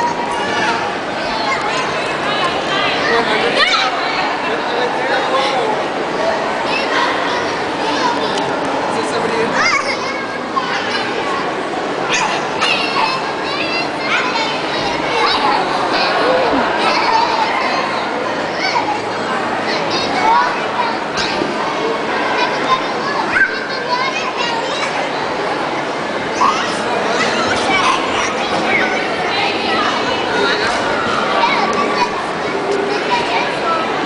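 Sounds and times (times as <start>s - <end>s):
children playing and chattering: 0.0s - 34.0s.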